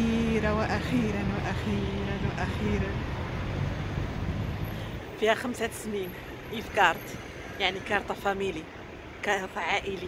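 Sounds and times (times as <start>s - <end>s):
vehicle rumble and tyre noise: 0.0s - 10.0s.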